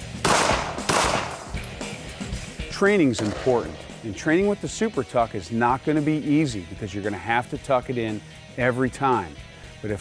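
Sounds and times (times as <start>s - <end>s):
background music: 0.0s - 10.0s
pistol shots with ring: 0.2s - 1.9s.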